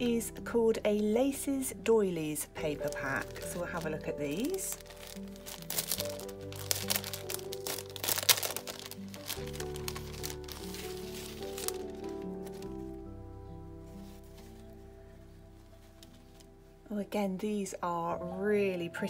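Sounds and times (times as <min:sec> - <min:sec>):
soft background music chords: 0:00.0 - 0:19.0
plastic packaging crinkling: 0:02.6 - 0:13.0.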